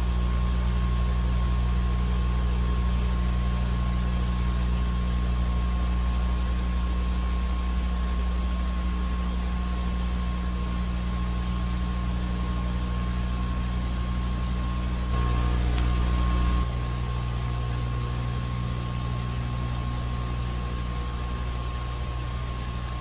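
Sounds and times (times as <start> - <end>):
low electrical hum: 0.0 - 23.0
thin whine: 14.8 - 23.0
even hiss: 15.2 - 23.0.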